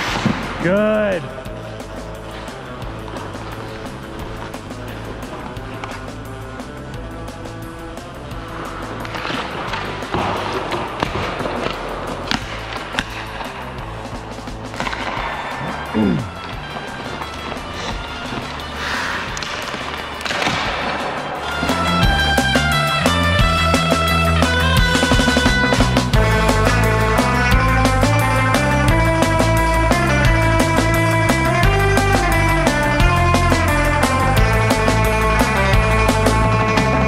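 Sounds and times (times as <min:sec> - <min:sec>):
hockey stick and puck clacks: 0:00.0 - 0:00.6, 0:01.5 - 0:23.8
skate blades scraping ice: 0:00.0 - 0:00.6, 0:01.5 - 0:22.6
background music with bass line: 0:00.0 - 0:37.0.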